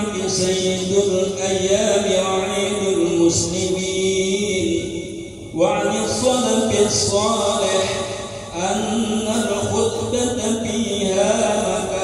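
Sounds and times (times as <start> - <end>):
man chanting recitation: 0.0 - 12.0.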